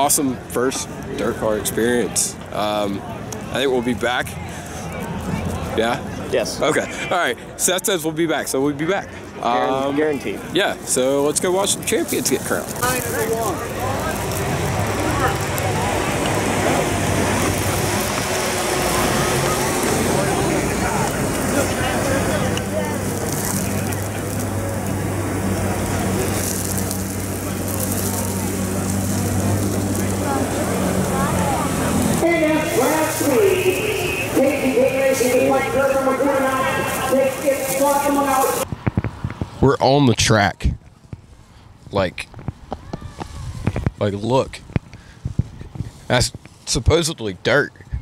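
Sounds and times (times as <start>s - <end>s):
crowd chatter: 0.0s - 38.7s
nearby voices: 12.0s - 38.6s.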